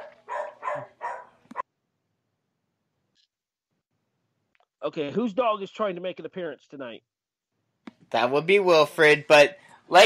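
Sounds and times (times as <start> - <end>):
dog barking: 0.0 - 1.7.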